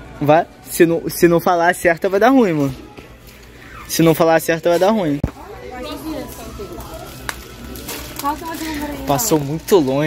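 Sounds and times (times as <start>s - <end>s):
shop background noise: 0.0s - 10.0s.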